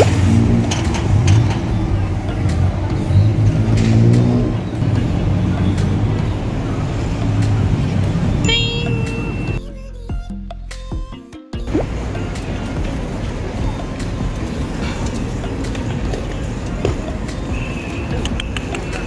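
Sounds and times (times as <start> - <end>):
low traffic rumble: 0.0 - 9.6, 11.7 - 19.0
people's voices: 0.0 - 9.6, 11.9 - 19.0
short ringing tone: 8.5 - 9.6.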